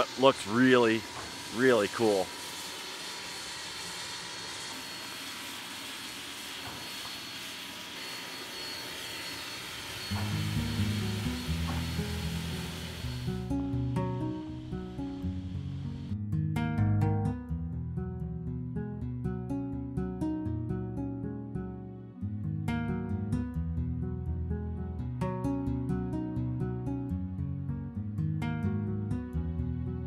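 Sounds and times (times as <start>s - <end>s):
steam locomotive hissing: 0.0s - 13.5s
acoustic guitar music: 10.1s - 30.0s.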